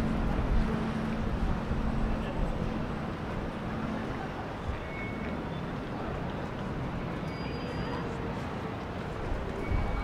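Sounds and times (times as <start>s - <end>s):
boat engine drone: 0.0s - 6.3s
city and wind rumble: 0.0s - 10.0s.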